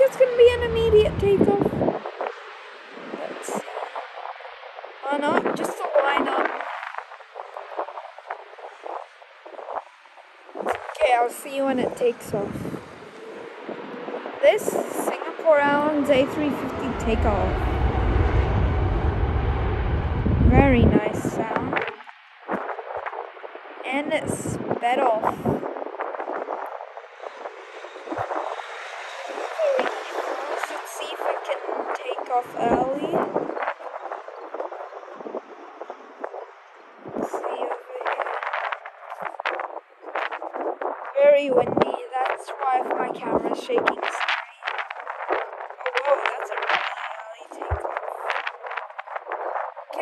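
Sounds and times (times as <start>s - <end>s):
jet engines at takeoff power: 12.4s - 22.1s
indistinct chatter of voices: 14.4s - 21.9s.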